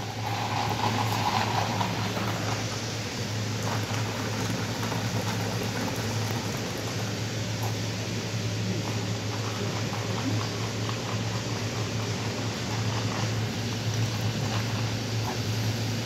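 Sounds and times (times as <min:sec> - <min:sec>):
constant low hum: 0:00.0 - 0:16.0
soda fizzing into cup: 0:00.0 - 0:16.0.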